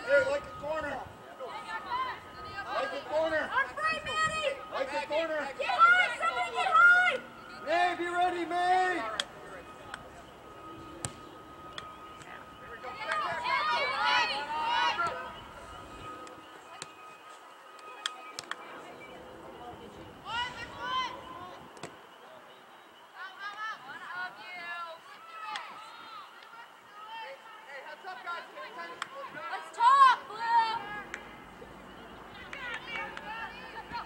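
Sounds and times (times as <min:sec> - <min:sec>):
people shouting: 0:00.0 - 0:09.4, 0:12.7 - 0:16.3.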